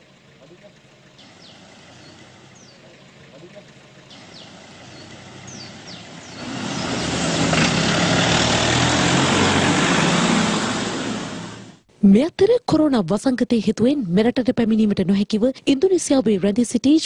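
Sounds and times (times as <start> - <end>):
faint bird chirps: 0.0 - 6.8
vehicle engine running: 0.0 - 11.9.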